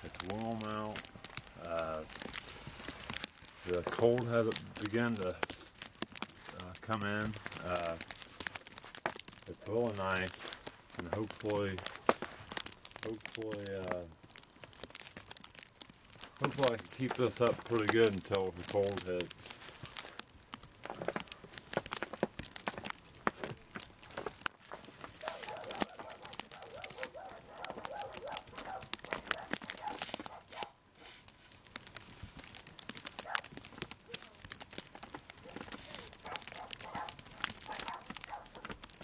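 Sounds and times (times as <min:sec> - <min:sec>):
snow crunching: 0:22.0 - 0:31.5.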